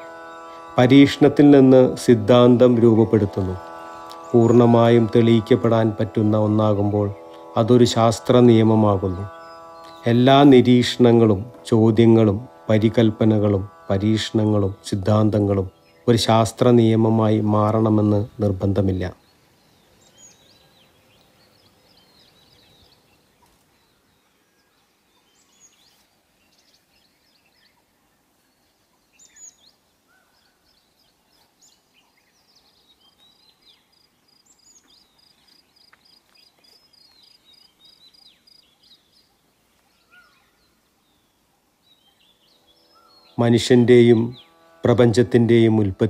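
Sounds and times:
faint birdsong: 0.0 - 46.0
bird rapid trill: 36.9 - 45.0.

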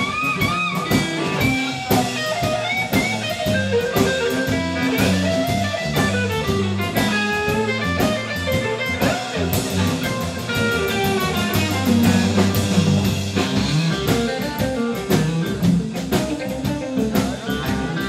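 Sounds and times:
drum kit beat: 0.0 - 18.0
electric bass: 0.0 - 18.0
electric guitar lead lines: 0.0 - 18.0.

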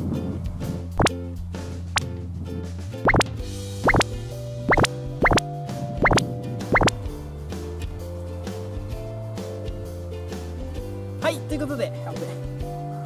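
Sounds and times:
light background music: 0.0 - 13.0
upward sweeping bloop effects: 3.0 - 4.1, 4.7 - 5.4, 6.0 - 7.0.

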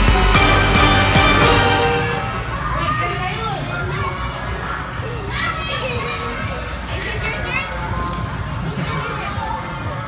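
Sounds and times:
background music: 0.0 - 10.0
children calling and playing: 1.5 - 10.0.

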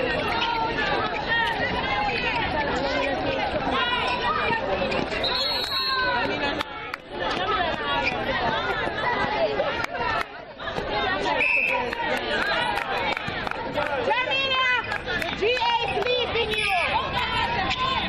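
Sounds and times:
crowd chattering and calling out: 0.0 - 18.0.

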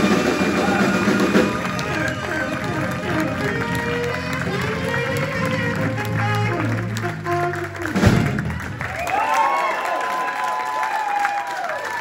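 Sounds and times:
drum kit: 0.0 - 9.3
saxophones playing melody: 0.2 - 8.1
upright bass: 0.2 - 8.8.

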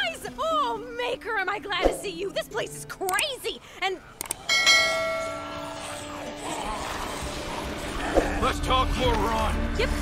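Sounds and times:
mouse clicks: 3.0 - 3.3
ringing bell strike: 4.5 - 5.9.

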